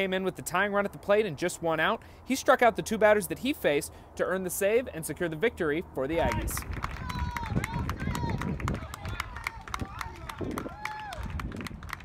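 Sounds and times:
sharp clicks and claps: 0:06.2 - 0:12.0.

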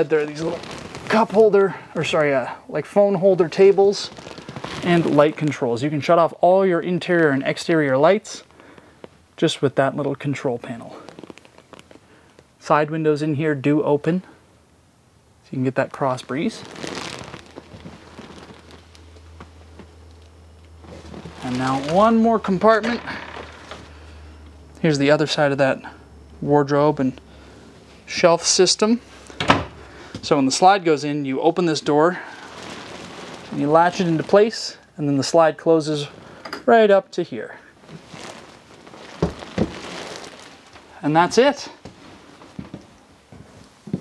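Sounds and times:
faint rustling: 0:00.0 - 0:02.6, 0:03.3 - 0:06.1, 0:10.0 - 0:12.6, 0:16.0 - 0:24.8, 0:31.9 - 0:34.8, 0:37.4 - 0:44.0
faint hiss: 0:00.0 - 0:44.0.

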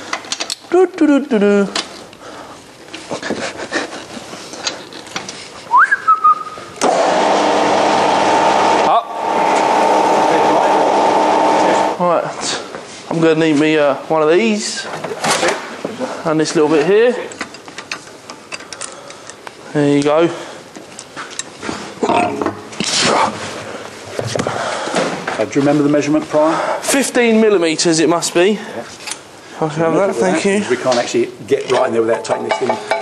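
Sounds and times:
person whistling: 0:05.7 - 0:06.7.

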